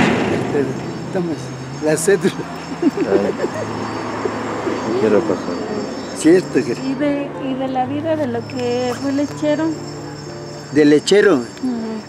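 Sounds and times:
vehicle engine passing: 0.0 - 11.6
man laughing: 2.1 - 4.4.

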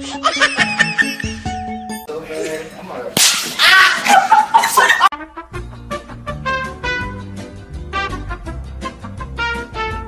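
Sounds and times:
laughter: 0.0 - 1.6, 3.7 - 5.1
music: 0.0 - 2.4, 5.1 - 10.0.

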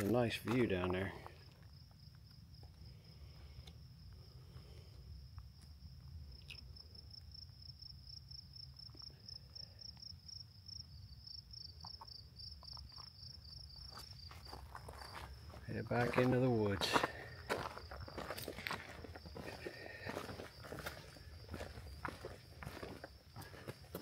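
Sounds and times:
insects trilling: 0.1 - 24.0.

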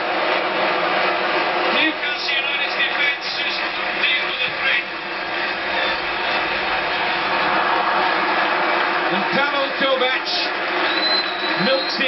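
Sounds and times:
stadium crowd cheering on television: 0.0 - 12.0.

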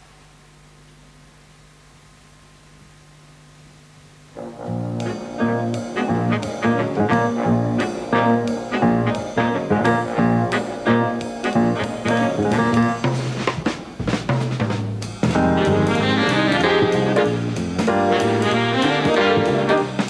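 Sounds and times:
saxophones and brass chords: 4.3 - 14.0, 14.6 - 20.0
drum kit beat: 4.5 - 20.0.

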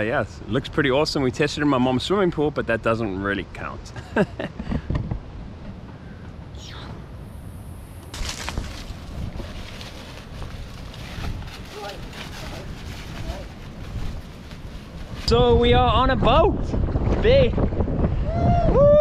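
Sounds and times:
wind rumble on microphone: 4.5 - 19.0
footsteps on dry leaves: 8.1 - 15.3.

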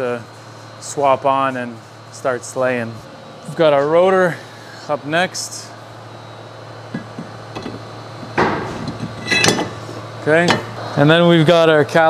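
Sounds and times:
metal brake rotor clanking: 6.9 - 9.9.

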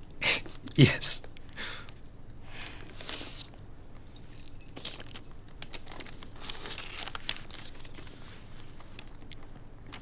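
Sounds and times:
soft rustling of clothing: 2.9 - 9.2.

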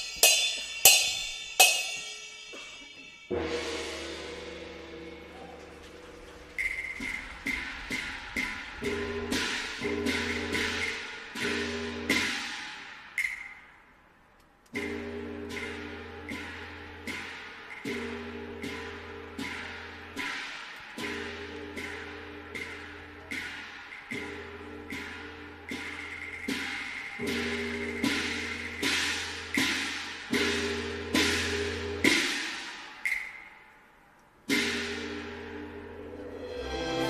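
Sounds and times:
wood-block strikes: 0.0 - 13.9, 14.7 - 37.0.

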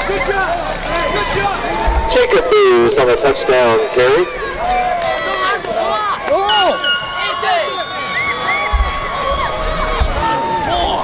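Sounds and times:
crowd shouting and cheering: 0.0 - 11.0
long steady tone: 2.0 - 4.8, 6.3 - 10.3.

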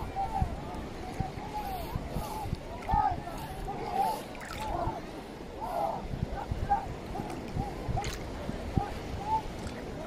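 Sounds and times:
water slapping against boat: 0.8 - 5.0, 6.7 - 10.0.

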